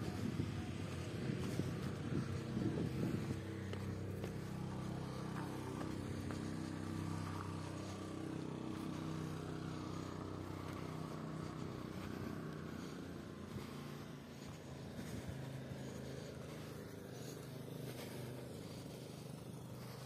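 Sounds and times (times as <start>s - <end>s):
vehicle engine humming: 0.0s - 20.0s.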